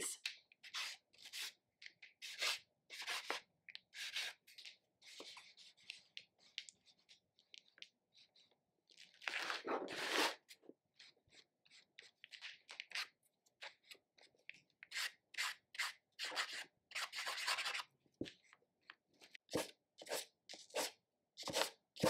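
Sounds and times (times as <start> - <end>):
marker scribbling on paper: 2.2 - 3.4, 14.9 - 17.9, 19.5 - 21.7.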